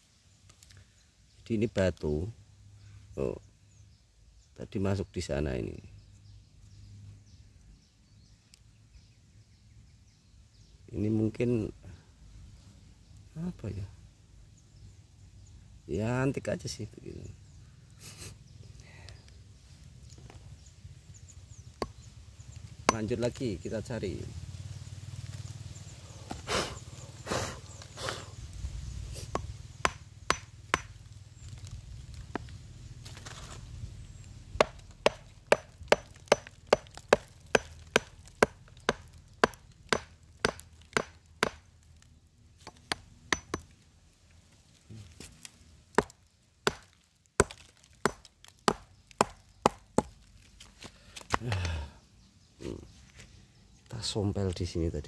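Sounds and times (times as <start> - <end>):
hammer knocking on rock: 29.3 - 30.9, 34.6 - 41.6, 42.6 - 43.7, 46.7 - 50.1.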